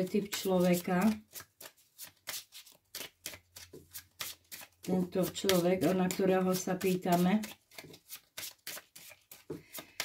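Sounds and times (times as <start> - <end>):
cards rustling: 0.0 - 10.0.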